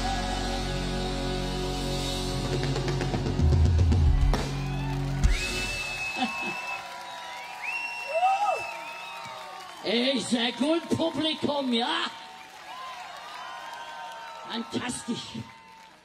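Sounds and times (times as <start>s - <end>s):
live rock band: 0.0s - 6.4s
audience cheering: 3.2s - 16.0s
whistling: 4.6s - 9.8s.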